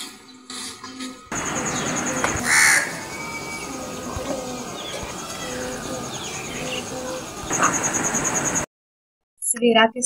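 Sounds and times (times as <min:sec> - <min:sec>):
crow cawing: 0:01.4 - 0:07.9.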